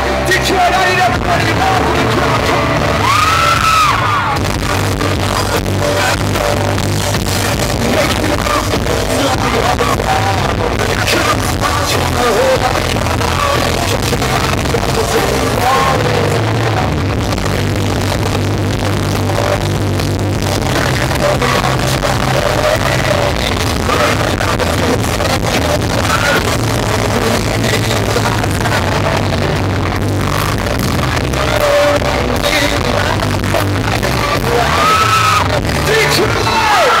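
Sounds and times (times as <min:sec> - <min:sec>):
man singing into a microphone: 0:00.0 - 0:19.8, 0:20.4 - 0:37.0
pop-punk band playing live: 0:00.0 - 0:37.0.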